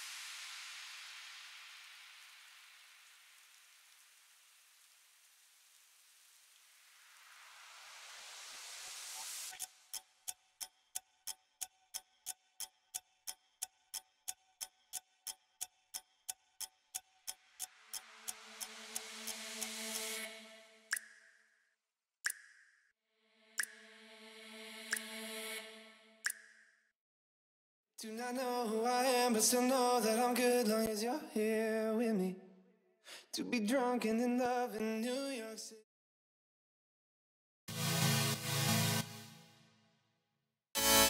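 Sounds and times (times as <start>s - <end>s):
rain hissing: 0.0s - 9.6s.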